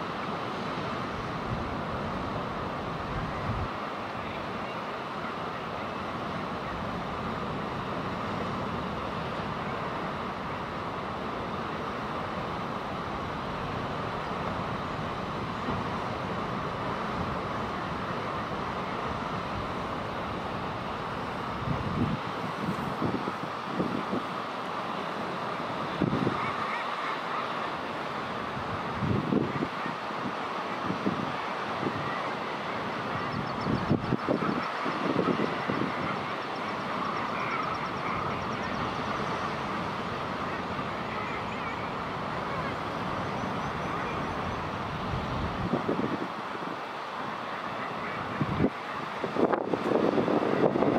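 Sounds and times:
steady background noise: 0.0 - 50.9
seabirds calling at colony: 25.8 - 28.1, 29.3 - 44.9, 47.4 - 49.3
low bird calls in bursts: 31.3 - 44.9.

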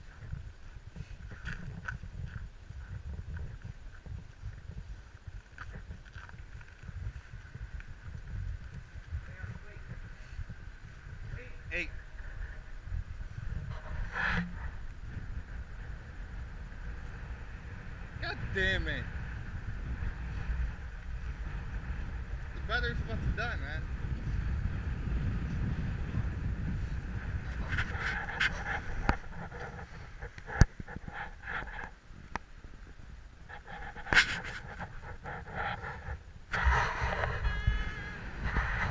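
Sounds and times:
road traffic rumble: 0.0 - 38.9
wind noise on microphone: 0.0 - 38.9
scuffs and clicks: 27.6 - 32.5, 33.5 - 37.4.

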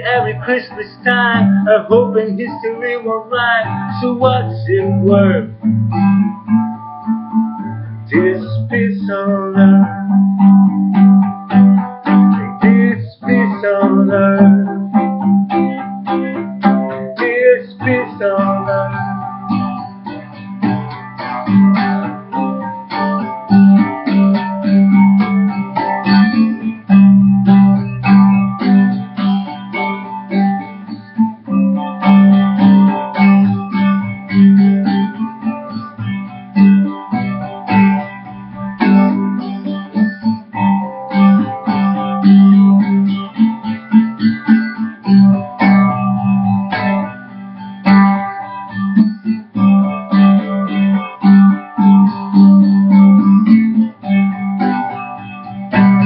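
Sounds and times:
guitar playing chords: 0.0 - 56.0.

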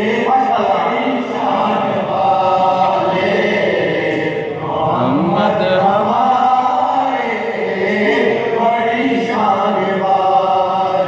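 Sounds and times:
lead reciter: 0.0 - 11.0
men chanting in unison: 0.0 - 11.0.

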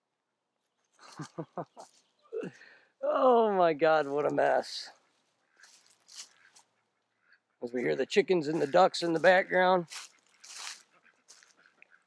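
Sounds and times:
faint duck quacking: 4.0 - 12.0.

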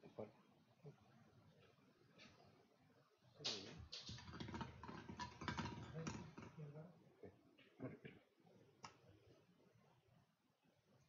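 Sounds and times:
plastic balls clattering in glass bowl: 3.8 - 6.6.

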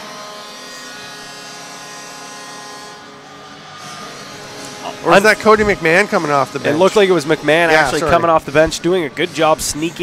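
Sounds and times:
arena goal horn buzzing: 0.0 - 7.9.

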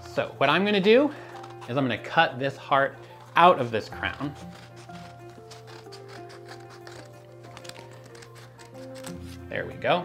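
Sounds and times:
quiet background music: 0.0 - 10.0
scissors snipping paper: 1.1 - 2.1, 3.1 - 9.5.

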